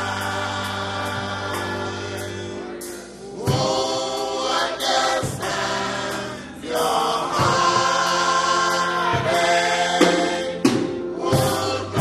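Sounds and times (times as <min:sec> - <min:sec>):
choir singing gospel: 0:00.0 - 0:12.0.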